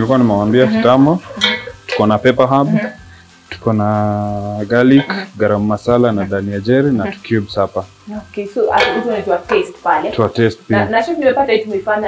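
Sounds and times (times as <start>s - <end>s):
spoon stirring food in a pot: 0.7s - 3.7s.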